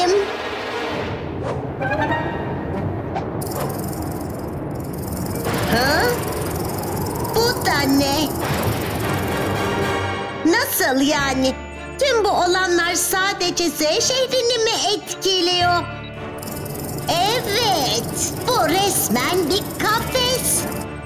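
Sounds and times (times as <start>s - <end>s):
cartoon background music: 5.4s - 21.0s.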